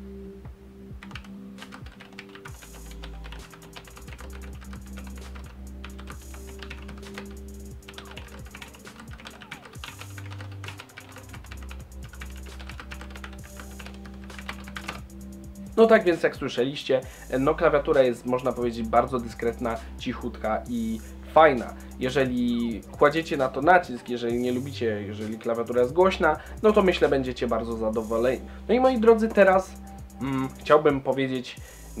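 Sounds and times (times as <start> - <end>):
fast typing on keyboard: 1.0 - 15.1.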